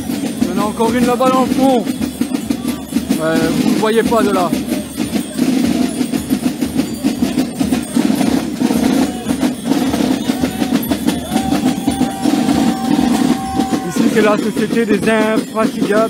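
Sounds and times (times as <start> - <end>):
snare and bass drumming: 0.0 - 16.0.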